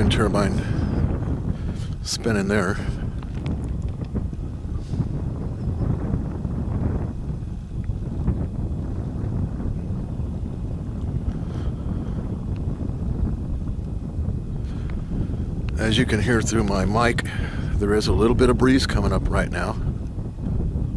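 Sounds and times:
wind buffeting microphone: 0.0 - 20.9.

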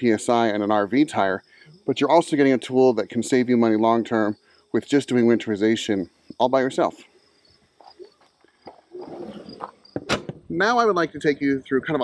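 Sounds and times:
faint crickets chirping: 0.0 - 12.0.

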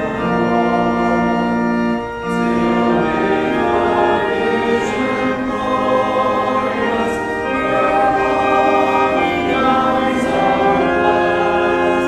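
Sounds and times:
congregation singing a hymn: 0.0 - 12.0
organ accompaniment: 0.0 - 12.0.

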